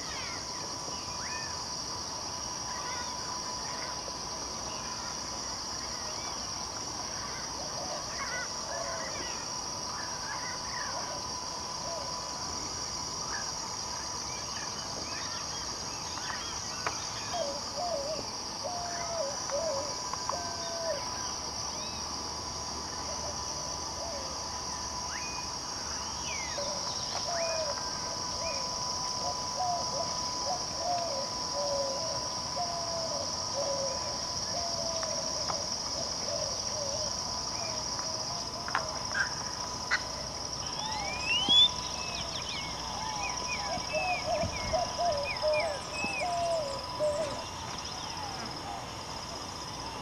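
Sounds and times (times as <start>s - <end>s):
insects droning high-pitched: 0.0s - 50.0s.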